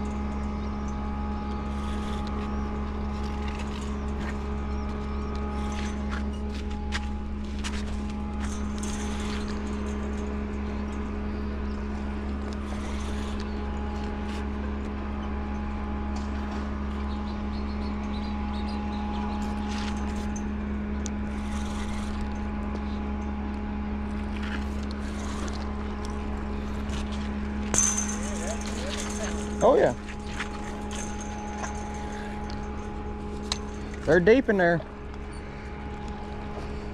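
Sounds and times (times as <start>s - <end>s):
machinery and water humming: 0.0s - 36.9s.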